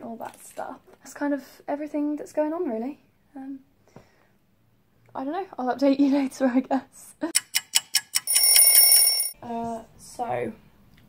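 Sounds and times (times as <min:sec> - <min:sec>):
alarm clock ticking: 0:07.4 - 0:09.4
alarm clock ringing: 0:08.1 - 0:09.4.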